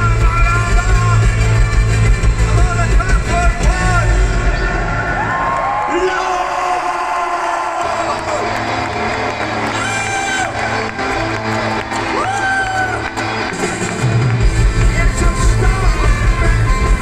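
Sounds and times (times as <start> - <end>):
live rock band with horns: 0.0 - 5.2, 8.5 - 17.0
crowd cheering: 0.0 - 17.0.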